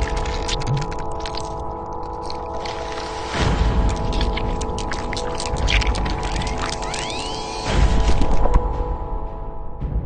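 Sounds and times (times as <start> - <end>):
crackles and ticks: 0.0 - 8.7.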